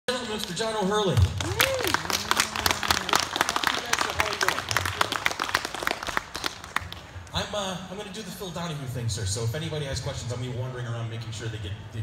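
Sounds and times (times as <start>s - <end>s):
audience applauding: 1.2s - 7.2s.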